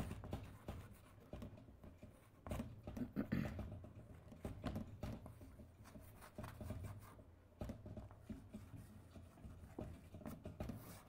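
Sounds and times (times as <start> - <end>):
faint writing scratches: 0.0 - 11.0.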